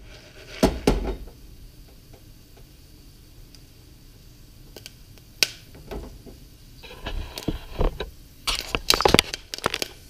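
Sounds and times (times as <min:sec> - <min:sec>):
popcorn popping in oil: 0:00.0 - 0:10.0.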